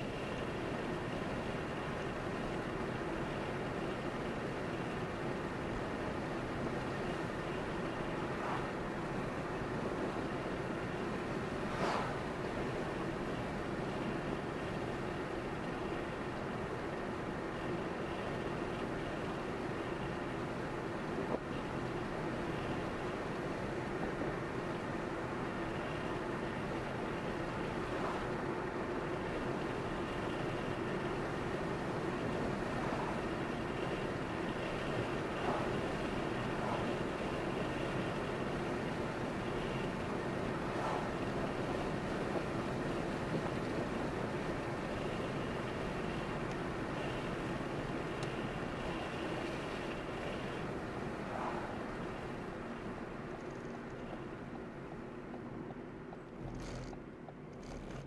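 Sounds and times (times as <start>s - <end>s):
car engine and tyre noise: 0.0s - 58.0s.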